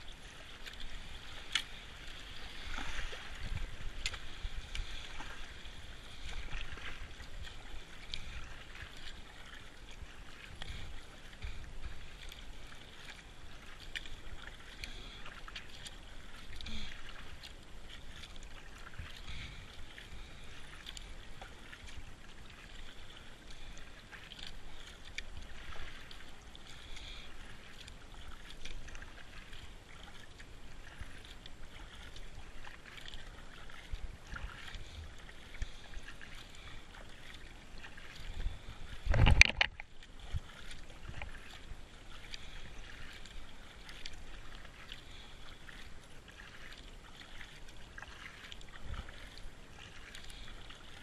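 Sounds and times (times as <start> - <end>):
kayak paddle splashing in water: 0.0 - 51.0.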